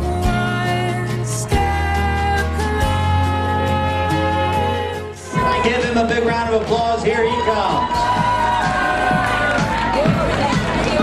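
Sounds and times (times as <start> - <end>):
loud music: 0.0 - 11.0
crowd cheering: 5.2 - 11.0.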